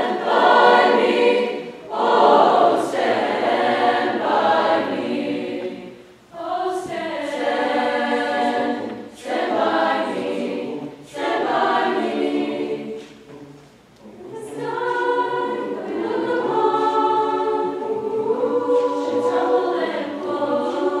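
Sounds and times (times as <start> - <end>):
mixed choir singing: 0.0 - 13.4, 14.0 - 21.0.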